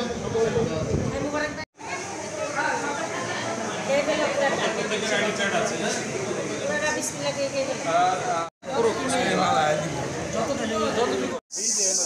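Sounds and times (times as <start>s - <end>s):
high-pitched hiss: 11.5s - 12.0s.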